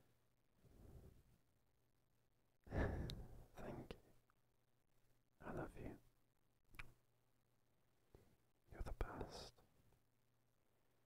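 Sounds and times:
man whispering: 3.4 - 4.2, 5.4 - 6.2, 8.7 - 9.7
mouth clicks: 6.7 - 7.0.

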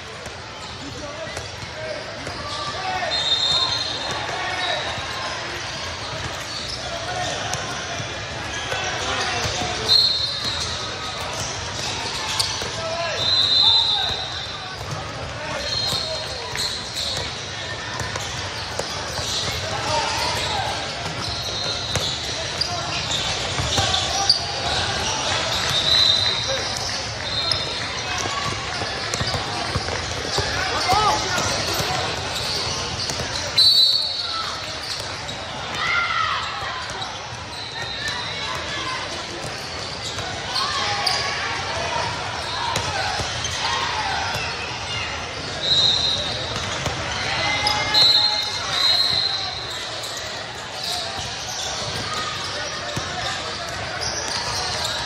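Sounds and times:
sneaker squeaks: 0.2 - 55.0
basketball bouncing: 20.4 - 24.0, 28.2 - 33.4.

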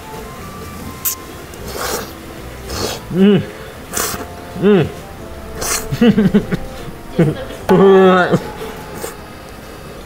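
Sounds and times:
noodle being slurped: 1.0 - 3.1, 3.9 - 4.3, 5.6 - 6.0.

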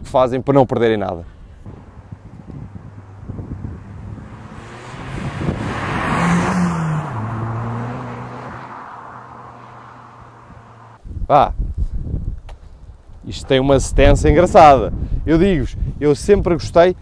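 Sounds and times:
car driving past: 1.7 - 11.0.

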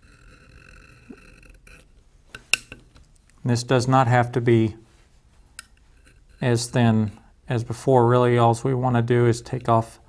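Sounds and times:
blade scraping leather: 0.0 - 1.9.

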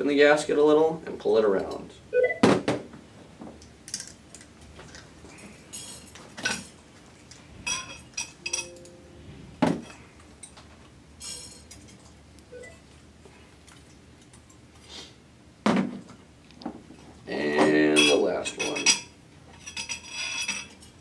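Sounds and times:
metal and glass parts clinking: 5.7 - 6.8, 7.7 - 9.0, 11.2 - 12.8, 18.0 - 21.0.

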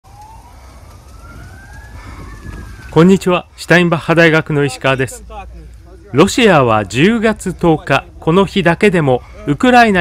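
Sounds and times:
siren wailing: 0.1 - 3.4.

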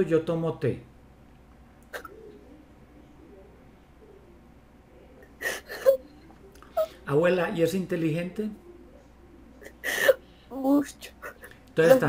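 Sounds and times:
faint whimpering: 1.9 - 2.7, 5.3 - 7.0, 9.5 - 12.0
sobbing breath: 5.4 - 6.0, 9.6 - 10.5.

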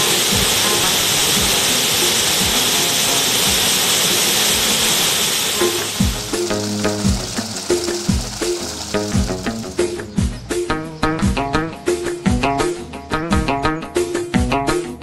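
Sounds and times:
background music with steady beat: 0.0 - 4.8, 5.6 - 15.0
waterfall rushing into a pool: 0.0 - 10.0.

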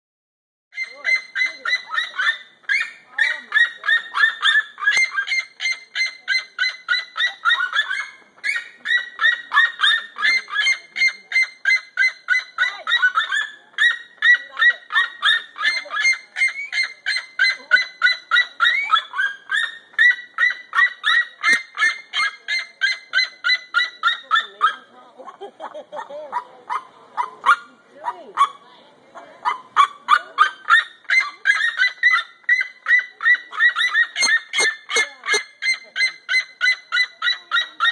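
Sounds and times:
birds yelping calls: 0.7 - 37.9.

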